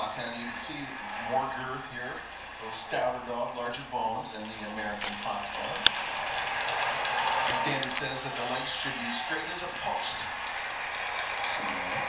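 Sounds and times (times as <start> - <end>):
man speaking: 0.0 - 5.9, 7.5 - 10.3, 11.6 - 12.0
noisy television background: 0.0 - 12.0.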